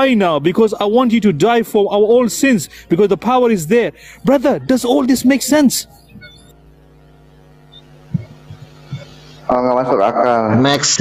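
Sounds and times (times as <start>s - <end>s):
low steady hum: 0.0s - 11.0s
soft thumps: 8.1s - 9.1s.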